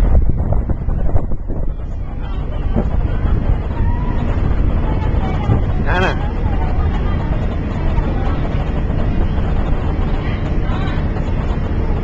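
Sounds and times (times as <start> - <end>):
ferry engine rumble: 0.0 - 12.0
wind: 0.0 - 12.0.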